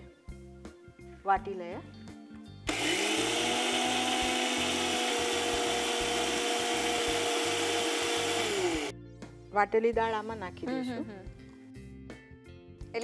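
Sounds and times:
mixer grinder motor running: 0:02.7 - 0:08.9.

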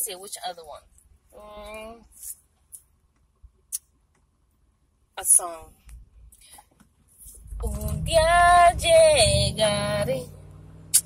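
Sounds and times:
woman singing unaccompanied: 0:07.5 - 0:10.4.

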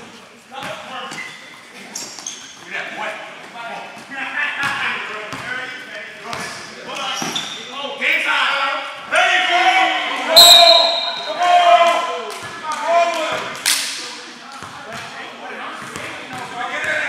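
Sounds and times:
players calling out: 0:06.4 - 0:13.6
basketball bouncing on gym floor: 0:15.8 - 0:17.0.

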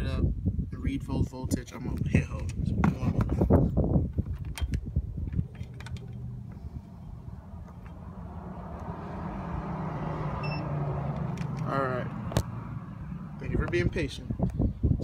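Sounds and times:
handling clicks and knocks: 0:04.1 - 0:06.3
vehicle engine running: 0:05.0 - 0:14.7
short beep: 0:10.4 - 0:10.7.

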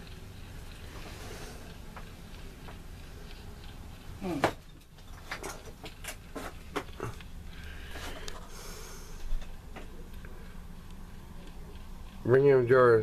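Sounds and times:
person murmuring: 0:04.2 - 0:04.6.

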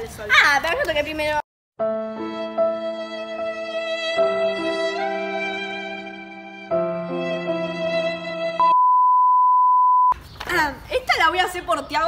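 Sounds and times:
pure test tone beep: 0:08.6 - 0:10.2.

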